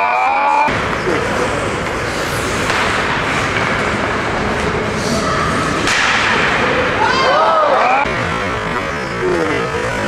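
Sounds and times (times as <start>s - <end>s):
ice rink noise: 0.0s - 10.0s
crowd shouting: 6.9s - 8.1s.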